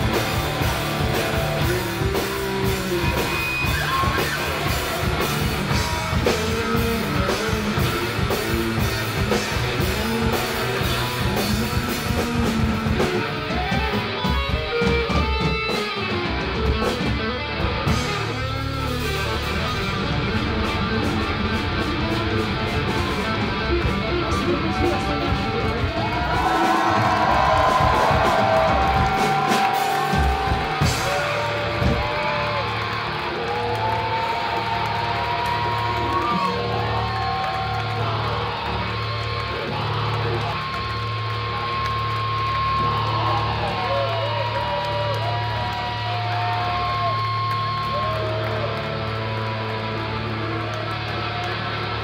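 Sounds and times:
pulsing bass line: 0:00.0 - 0:14.0, 0:16.2 - 0:45.5
electric guitar bending notes: 0:00.0 - 0:33.2
drums: 0:00.0 - 0:52.0.

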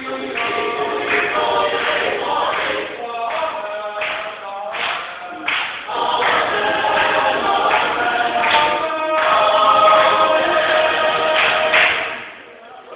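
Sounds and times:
choir singing a cappella: 0:00.0 - 0:12.8.

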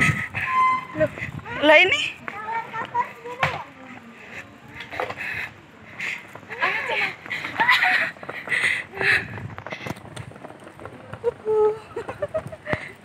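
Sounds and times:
children calling and chattering: 0:00.0 - 0:13.0.

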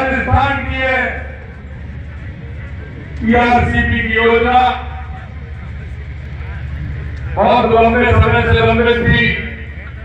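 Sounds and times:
amplified speech: 0:00.0 - 0:01.4, 0:03.2 - 0:05.2, 0:07.4 - 0:09.6
low rumble: 0:00.0 - 0:10.0
murmur of voices: 0:00.0 - 0:10.0.

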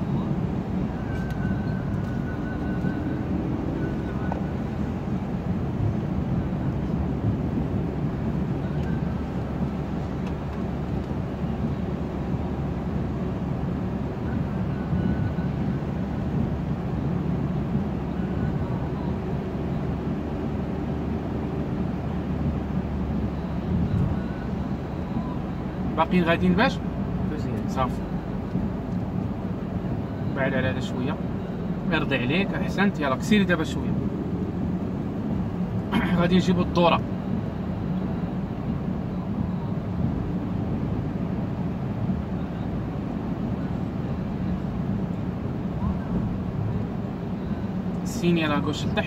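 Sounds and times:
car engine: 0:00.0 - 0:49.0
tyres on wet road: 0:00.0 - 0:49.0.

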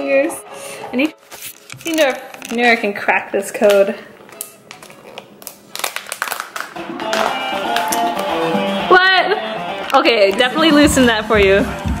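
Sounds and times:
background music: 0:00.0 - 0:12.0
plastic pouch crinkling: 0:01.2 - 0:08.3.

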